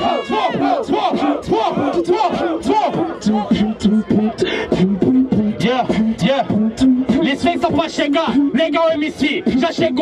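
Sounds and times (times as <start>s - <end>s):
crowd chanting: 0.0s - 8.7s
voices chanting through microphone: 0.0s - 10.0s.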